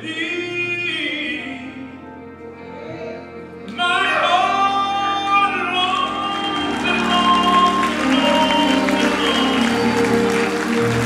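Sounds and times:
man singing gospel: 0.0 - 2.0, 3.7 - 10.0
church band playing: 0.0 - 11.0.

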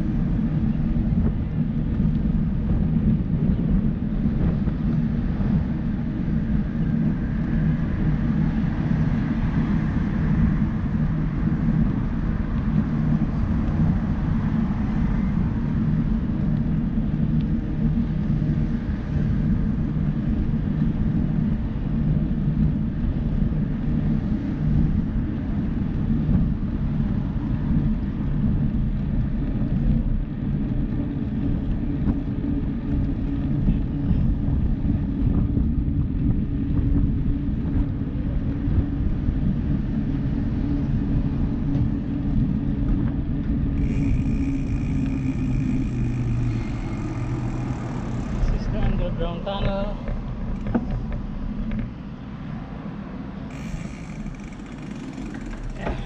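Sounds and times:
bicycle tyres on asphalt: 0.0 - 56.0
wind buffeting microphone: 0.0 - 56.0
faint high whine: 43.4 - 50.0, 53.5 - 56.0.

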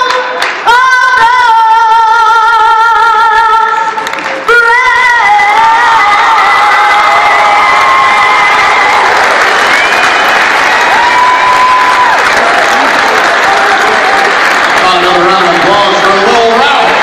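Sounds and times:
crowd clapping and cheering: 0.0 - 2.0, 3.1 - 17.0.

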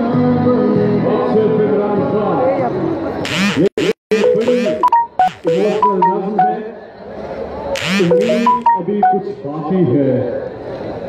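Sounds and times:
clipped keyboard notes: 4.1 - 6.6, 8.0 - 9.2.

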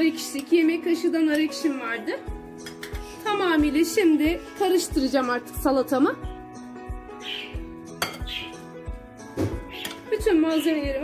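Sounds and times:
background music: 0.0 - 11.0
spoon clinking against glass: 8.0 - 8.4.

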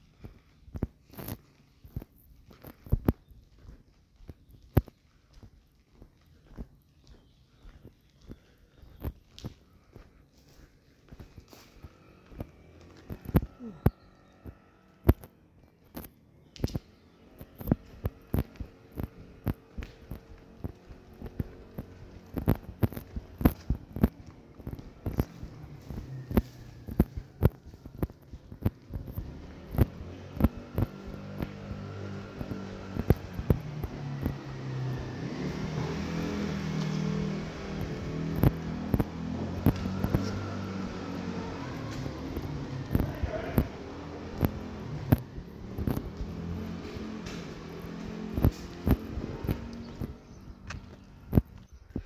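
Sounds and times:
footsteps on concrete floor: 0.0 - 52.0
vehicle engine hum: 0.0 - 52.0.

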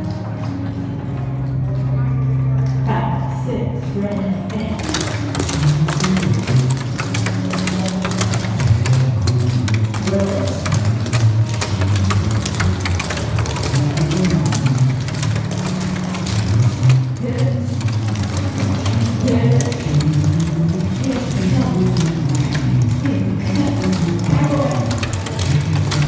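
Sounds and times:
pop song with singer: 13.0 - 26.0.

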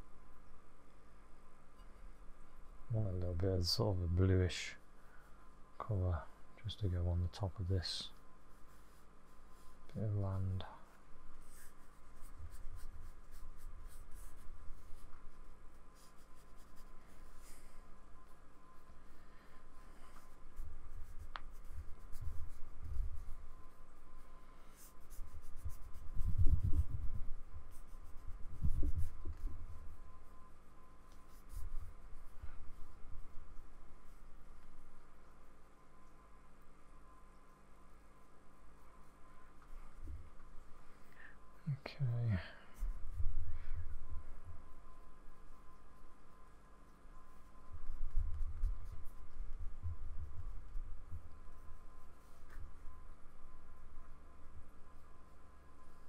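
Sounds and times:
paintbrush rubbing on paper: 1.9 - 35.8, 42.6 - 43.4, 44.2 - 53.9.

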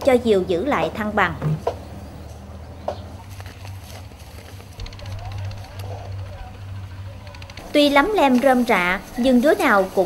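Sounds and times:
low engine hum: 0.0 - 10.0
distant children's voices: 4.8 - 10.0.

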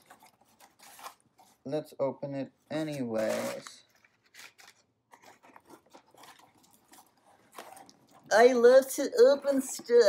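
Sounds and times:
cardboard scraping: 0.0 - 1.7, 2.8 - 8.3
packing paper rustling: 0.0 - 1.7, 2.6 - 8.6.

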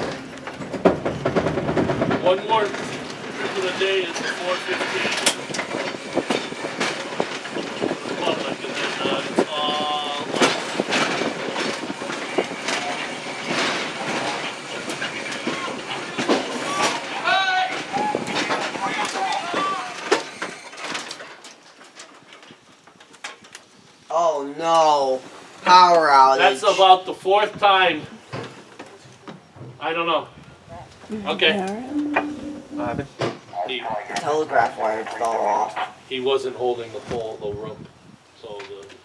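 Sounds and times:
wheels clacking over rail joints: 0.0 - 23.8
trolley car rolling on track: 0.0 - 30.3, 32.5 - 39.0.

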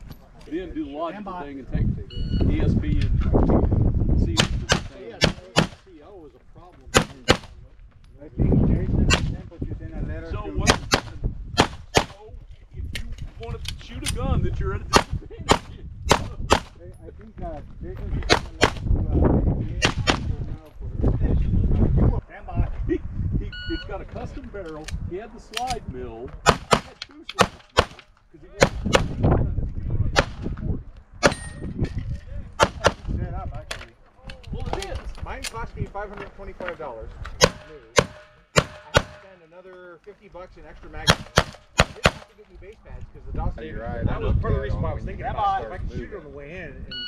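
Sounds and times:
pistol shots: 6.9 - 7.5, 10.7 - 12.2, 14.9 - 16.7, 26.4 - 28.0, 37.4 - 39.3, 41.1 - 42.3
handgun shots echoing: 37.4 - 39.3, 41.1 - 42.3.

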